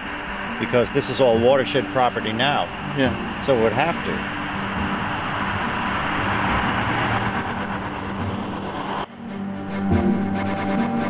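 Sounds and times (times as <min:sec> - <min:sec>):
insects chirping: 0:00.0 - 0:09.1
steady hiss: 0:00.0 - 0:09.1.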